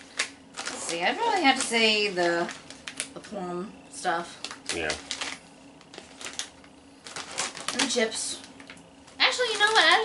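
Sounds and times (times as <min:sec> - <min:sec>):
snack packaging crinkling: 0:00.0 - 0:03.4, 0:04.2 - 0:10.0.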